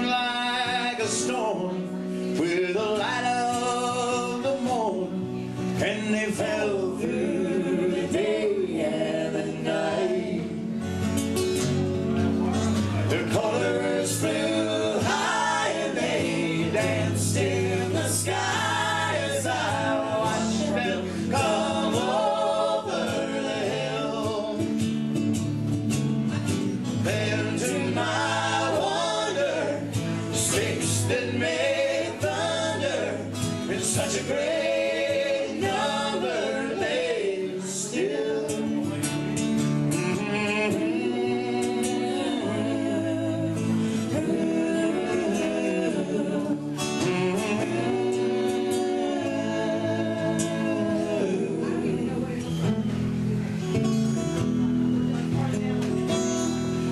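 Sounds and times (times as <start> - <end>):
lead and harmony singing: 0.0 - 54.3
strummed acoustic guitars: 0.0 - 56.9
electric bass: 4.0 - 56.9.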